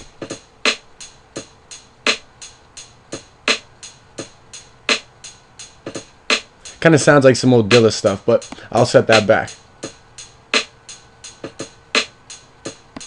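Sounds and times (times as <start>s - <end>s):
drum machine beat: 0.0s - 13.0s.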